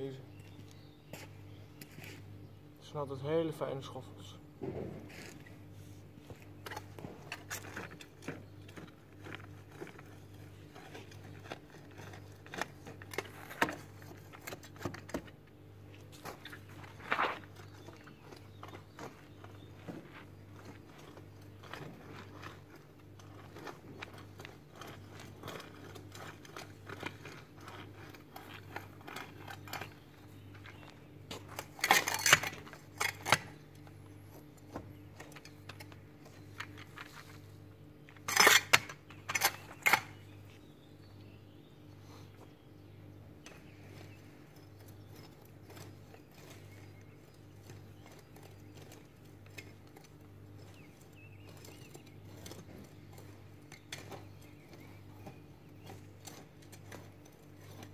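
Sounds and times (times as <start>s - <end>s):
garden hoe scraping soil: 4.8s - 40.7s, 43.4s - 57.9s.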